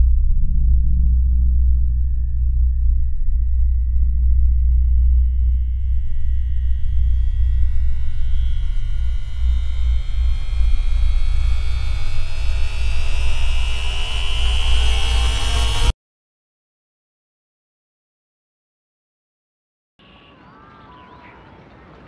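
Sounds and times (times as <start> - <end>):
ambient electronic drone music: 0.0 - 15.9.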